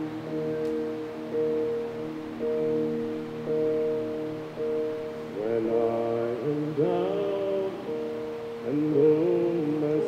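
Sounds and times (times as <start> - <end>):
held keyboard chords: 0.0 - 10.0
person singing hymn melody: 0.0 - 10.0.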